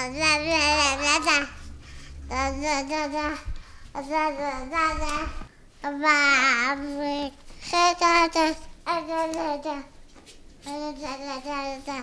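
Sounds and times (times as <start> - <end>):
child singing: 0.0 - 1.7, 2.3 - 10.0, 10.7 - 12.0.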